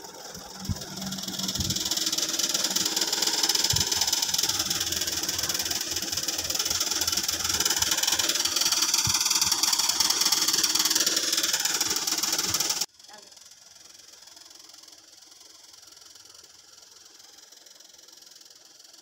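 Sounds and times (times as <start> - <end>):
loud mechanical hiss with buzz: 0.0 - 17.7.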